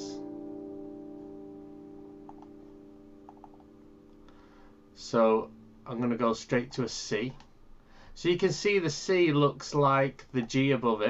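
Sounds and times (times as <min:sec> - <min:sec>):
acoustic guitar chord ringing: 0:00.0 - 0:06.5
faint clicks: 0:02.3 - 0:02.6.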